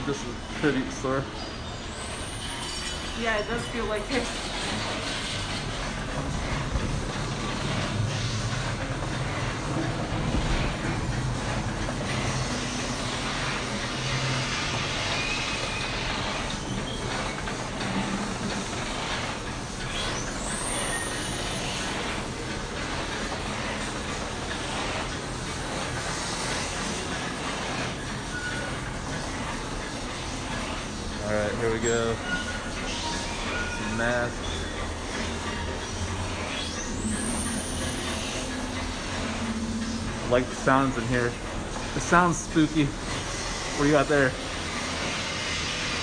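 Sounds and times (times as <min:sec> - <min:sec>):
dark rumbling and hissing ambience: 0:00.0 - 0:46.0.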